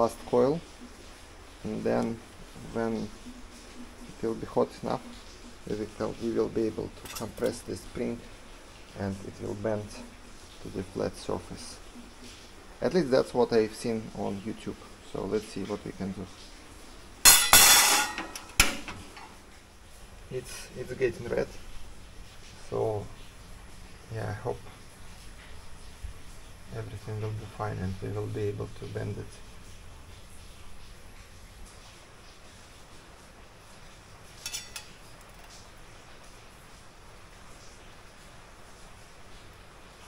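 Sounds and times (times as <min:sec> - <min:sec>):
metal spring clinking on metal plate: 0:07.0 - 0:07.6, 0:17.3 - 0:19.3, 0:34.4 - 0:35.6.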